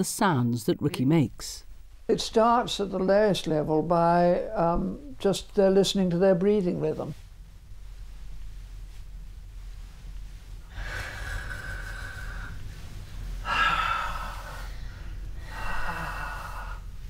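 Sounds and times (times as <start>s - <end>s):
person breathing out: 13.4s - 16.9s.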